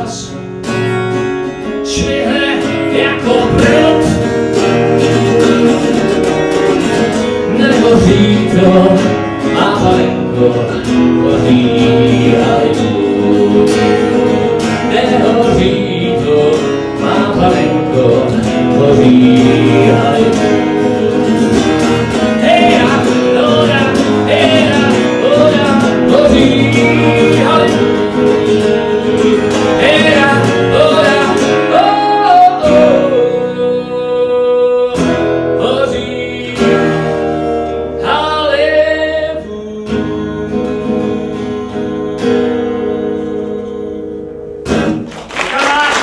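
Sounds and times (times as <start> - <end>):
man singing: 0.0 - 46.0
strummed acoustic guitar: 0.0 - 46.0.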